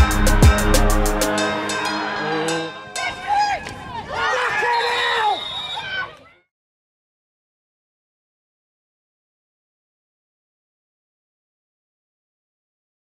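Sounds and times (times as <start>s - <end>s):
hip-hop backing music: 0.0s - 3.4s
crowd noise: 0.0s - 6.5s.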